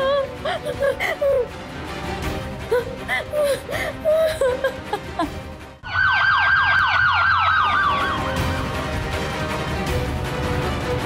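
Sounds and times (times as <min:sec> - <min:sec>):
police siren wailing: 0:05.8 - 0:08.9.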